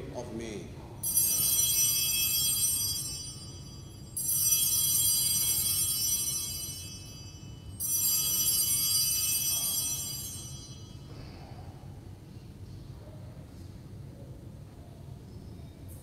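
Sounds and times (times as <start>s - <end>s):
altar bells ringing: 1.0s - 11.9s.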